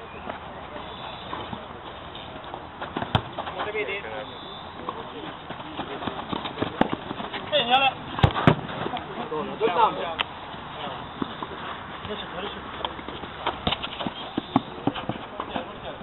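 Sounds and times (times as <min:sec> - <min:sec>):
football being kicked: 0:02.9 - 0:03.4, 0:08.2 - 0:08.7.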